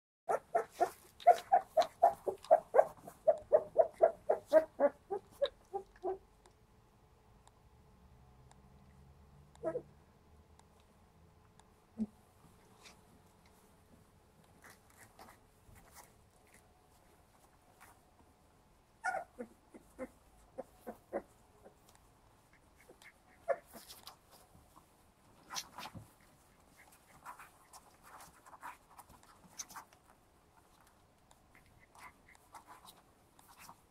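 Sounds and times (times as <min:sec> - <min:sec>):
puppy yelping: 0:00.3 - 0:06.2, 0:09.6 - 0:09.9, 0:19.0 - 0:21.9, 0:22.8 - 0:24.4.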